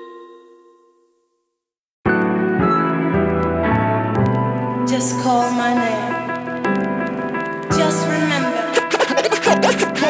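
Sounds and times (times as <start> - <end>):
turntable scratches: 8.8 - 10.0.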